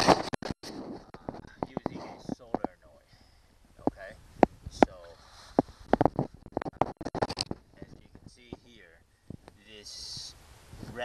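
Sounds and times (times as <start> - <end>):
faint whispered speech: 1.4 - 3.1.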